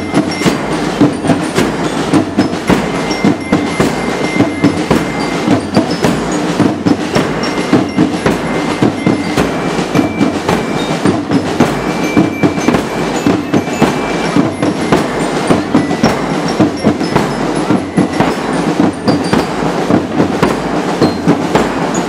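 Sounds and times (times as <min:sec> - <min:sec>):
high held notes: 0:00.0 - 0:22.0
marching drums beating: 0:00.0 - 0:22.0.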